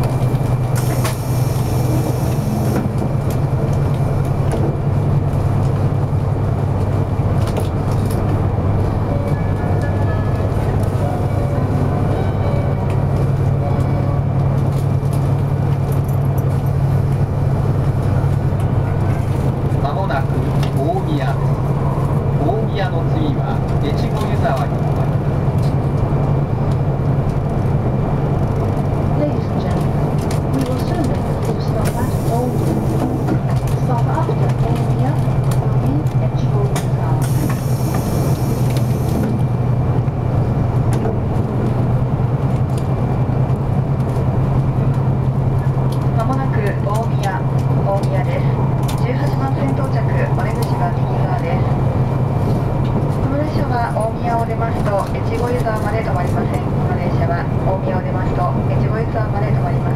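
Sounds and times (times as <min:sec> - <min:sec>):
train interior hum and rumble: 0:00.0 - 0:59.9
faint passenger voices: 0:07.7 - 0:25.9, 0:28.7 - 0:39.4, 0:45.6 - 0:59.9.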